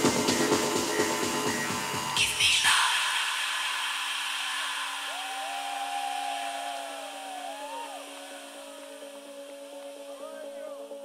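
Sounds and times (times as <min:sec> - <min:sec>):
noise hiss: 0:00.0 - 0:11.0.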